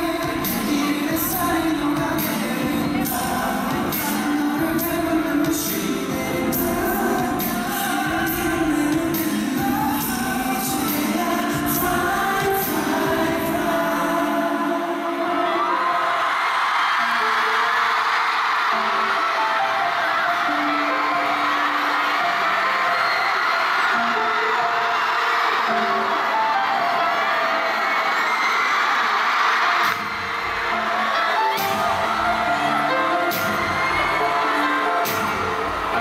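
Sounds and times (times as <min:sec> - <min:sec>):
live pop song: 0:00.0 - 0:36.0
crowd screaming: 0:14.9 - 0:36.0.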